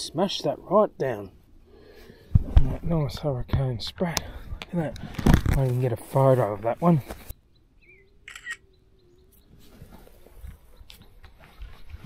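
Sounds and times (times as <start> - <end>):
camera shutter click: 8.3 - 8.6.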